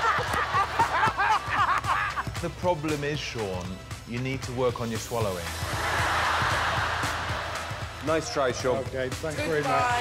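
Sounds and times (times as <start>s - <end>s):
audience laughing: 0.0s - 2.3s, 5.7s - 7.7s
background music: 0.0s - 10.0s.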